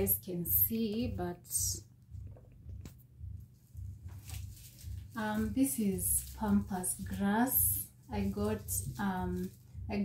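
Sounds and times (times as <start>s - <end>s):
low uneven rumble: 0.0s - 10.0s
dried grass rustling: 4.1s - 9.8s.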